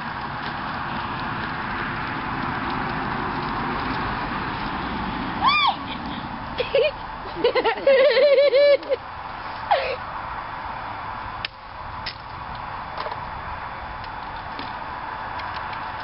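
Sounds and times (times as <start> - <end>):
outdoor background noise: 0.0 - 16.0
high-pitched giggling: 5.8 - 9.0.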